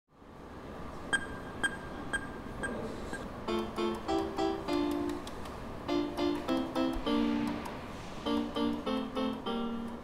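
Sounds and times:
sharp ticking: 3.5s - 10.0s.

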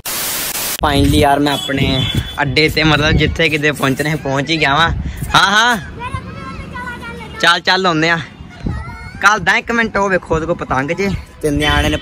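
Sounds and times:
white-noise static: 0.0s - 1.4s
man talking: 0.8s - 5.8s, 9.2s - 12.0s.

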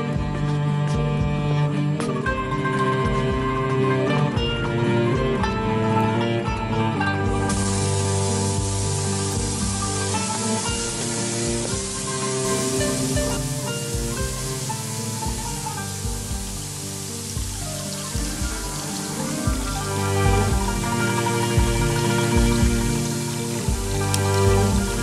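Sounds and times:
soft background music: 0.0s - 25.0s
tap water running into tub: 7.5s - 25.0s.

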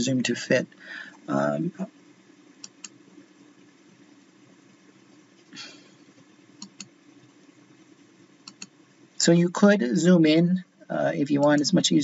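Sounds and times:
low room hum: 0.0s - 12.0s
soft hiss: 0.0s - 12.0s
computer mouse clicks: 6.6s - 6.9s, 8.4s - 8.8s.

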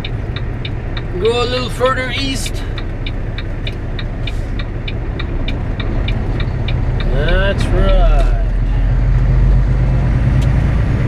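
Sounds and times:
truck engine rumble: 0.0s - 11.0s
turn signal ticking: 0.0s - 11.0s.

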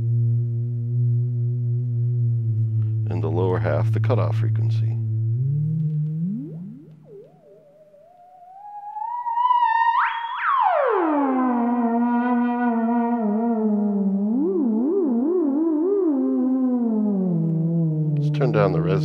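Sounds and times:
buzzy gliding synthesizer tone: 0.0s - 19.0s.

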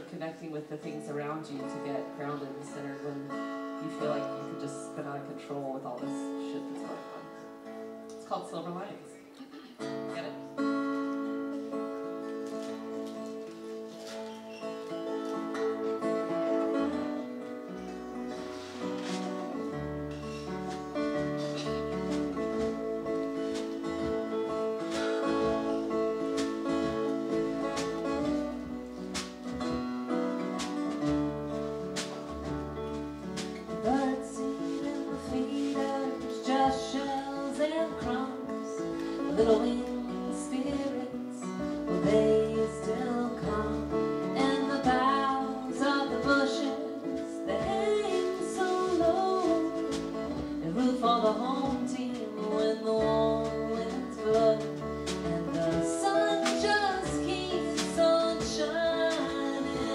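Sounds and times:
strummed acoustic guitar: 0.0s - 59.9s.

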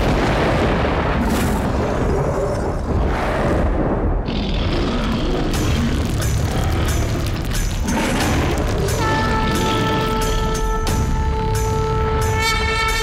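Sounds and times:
deep rumbling booms: 0.0s - 10.4s
dramatic background music: 3.8s - 13.0s.

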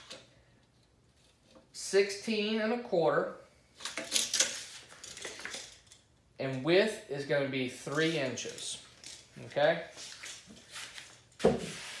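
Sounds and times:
tape measure scraping on wood: 10.0s - 12.0s.

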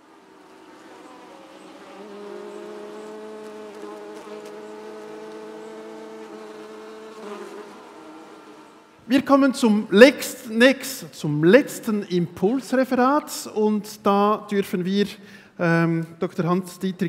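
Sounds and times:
flying insect buzzing: 0.0s - 9.1s.

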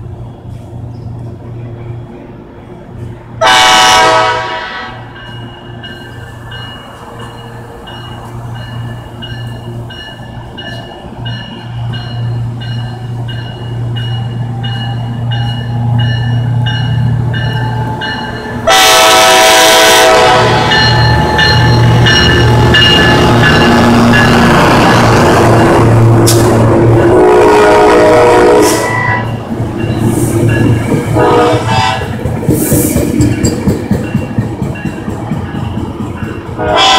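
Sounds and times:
diesel locomotive engine rumbling: 0.0s - 36.9s
locomotive horn: 3.4s - 5.2s, 18.6s - 21.5s, 23.2s - 29.3s, 31.1s - 32.2s, 36.6s - 36.9s
locomotive bell ringing: 4.8s - 25.9s, 28.8s - 32.2s
train wheels rolling: 28.3s - 36.9s.

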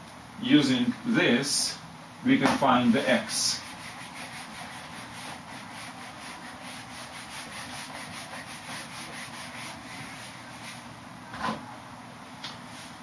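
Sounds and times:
eraser rubbing on whiteboard: 3.3s - 10.9s.

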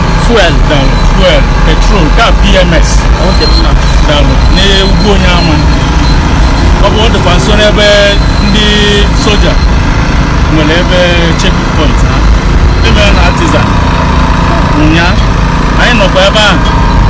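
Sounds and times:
man talking: 0.0s - 5.8s, 6.8s - 9.6s, 10.5s - 13.8s, 14.6s - 16.8s
truck engines rumbling: 0.0s - 17.0s.

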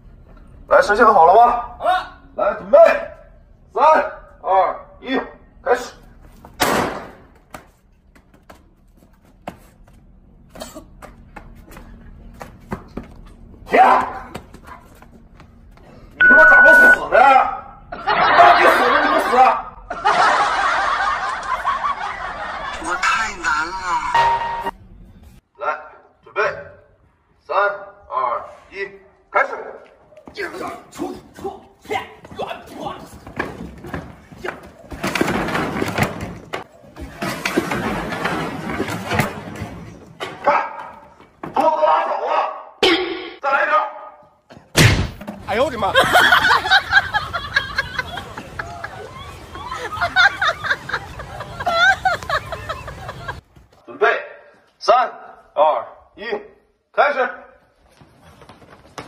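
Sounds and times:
short steady beep: 16.2s - 17.1s
people talking and laughing: 17.7s - 24.5s, 45.5s - 53.8s
person crashing over wooden bench: 33.2s - 40.4s.

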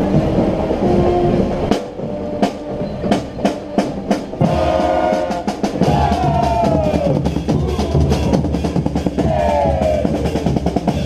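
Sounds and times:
marching drums beating: 0.0s - 11.0s.

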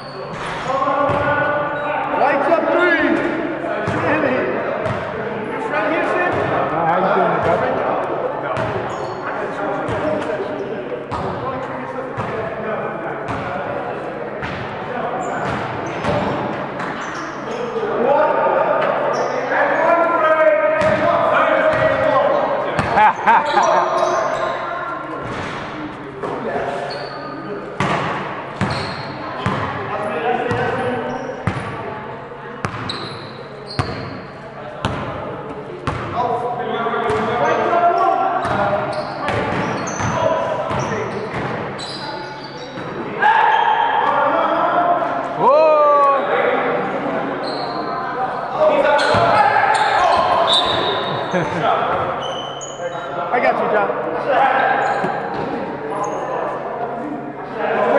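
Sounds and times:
shoe squeaks: 0.0s - 0.7s, 8.8s - 10.0s, 15.2s - 17.9s, 19.0s - 19.9s, 23.3s - 24.9s, 26.6s - 27.5s, 28.6s - 29.4s, 30.5s - 31.6s, 32.7s - 34.5s, 37.1s - 37.7s, 38.4s - 44.0s, 47.4s - 53.2s, 54.6s - 56.4s
basketballs bouncing on gym floor: 12.2s - 12.4s, 27.8s - 29.8s, 31.4s - 31.8s, 32.6s - 33.0s, 34.8s - 35.2s, 35.8s - 36.2s, 38.4s - 38.7s, 39.3s - 41.6s.

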